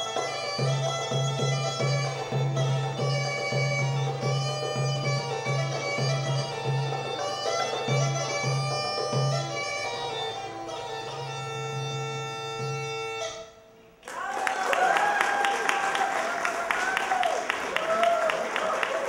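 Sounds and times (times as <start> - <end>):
goblet drum: 0.0 - 13.5
bagpipe melody over drone: 0.0 - 13.6
audience applause: 14.0 - 19.0.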